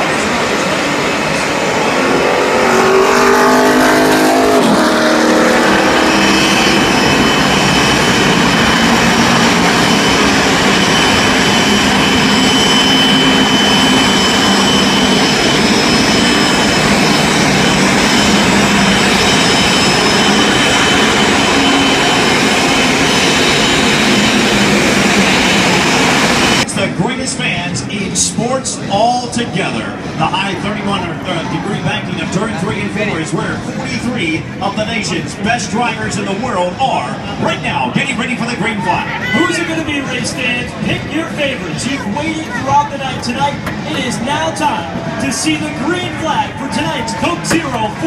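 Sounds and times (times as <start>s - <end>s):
race cars passing: 0.0s - 48.0s.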